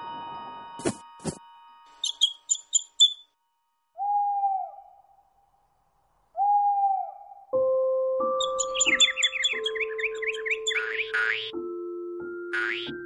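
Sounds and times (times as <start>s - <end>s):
high bird chirps: 1.9s - 3.3s, 8.4s - 11.6s
cartoon owl hoots: 4.0s - 5.3s, 6.4s - 7.5s, 8.4s - 11.6s, 12.5s - 13.0s.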